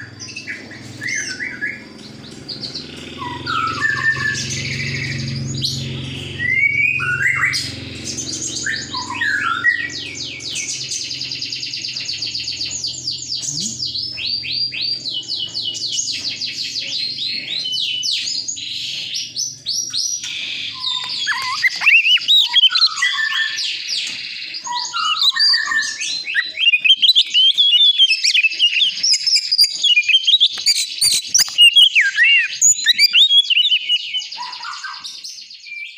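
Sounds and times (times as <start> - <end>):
bird singing: 0.0 - 35.9.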